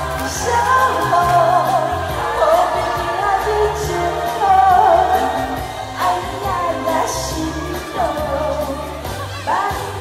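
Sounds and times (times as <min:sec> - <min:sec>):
woman singing into a microphone: 0:00.0 - 0:10.0.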